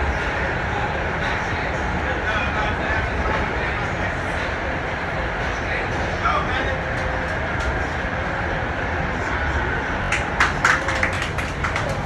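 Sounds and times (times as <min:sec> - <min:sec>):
train car rumbling: 0:00.0 - 0:12.0.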